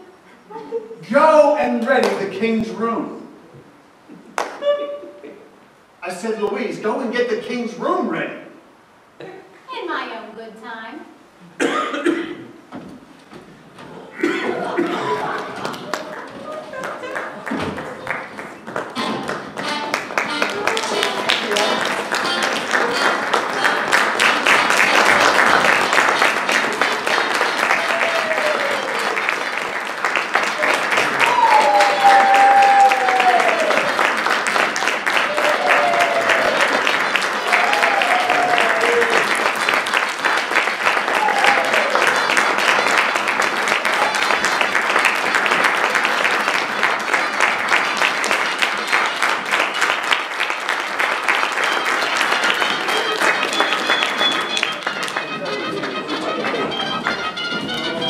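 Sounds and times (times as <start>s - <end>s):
audience applauding: 4.3s - 4.8s, 14.2s - 58.0s
calls over clapping: 14.8s - 57.9s.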